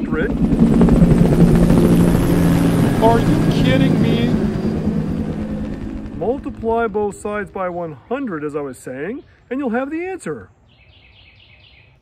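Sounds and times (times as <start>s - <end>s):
helicopter rotor chop: 0.0s - 8.0s.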